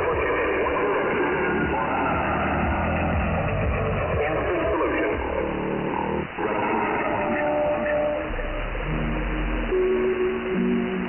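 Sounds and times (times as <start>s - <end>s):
shortwave radio static: 0.0s - 11.0s
sliding radio tones: 0.0s - 11.0s
steady radio tone: 0.0s - 11.0s.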